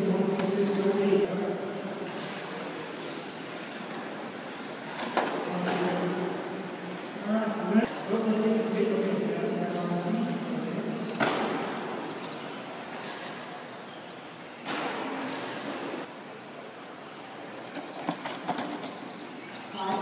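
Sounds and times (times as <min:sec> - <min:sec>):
rc cars passing by: 0:00.0 - 0:20.0.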